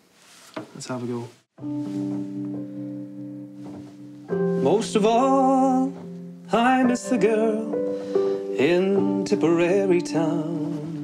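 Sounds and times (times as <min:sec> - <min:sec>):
electric piano chords: 0:01.6 - 0:11.0.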